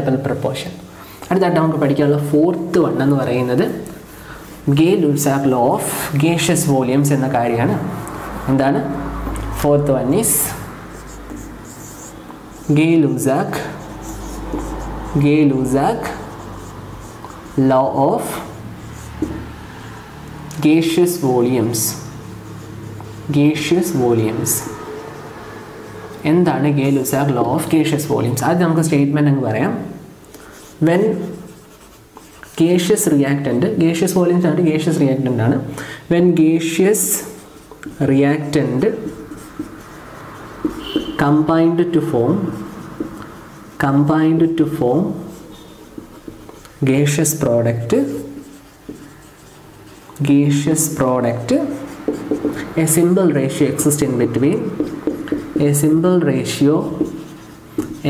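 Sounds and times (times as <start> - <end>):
person speaking: 0.0 - 58.0
marker writing on whiteboard: 1.3 - 35.7, 36.3 - 58.0
marker squeak: 40.6 - 41.3, 45.5 - 46.1.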